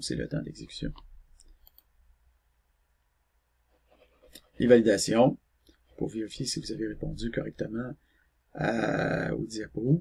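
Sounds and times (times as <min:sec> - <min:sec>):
computer mouse clicks: 0:00.9 - 0:01.9.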